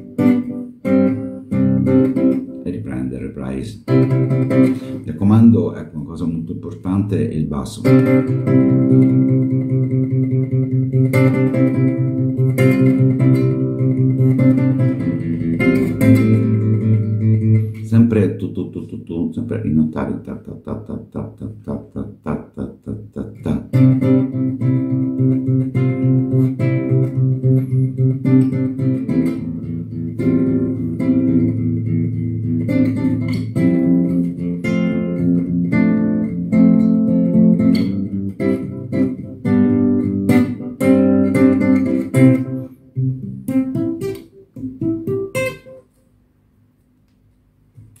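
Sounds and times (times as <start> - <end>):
fingerpicked classical guitar: 0.0 - 46.0.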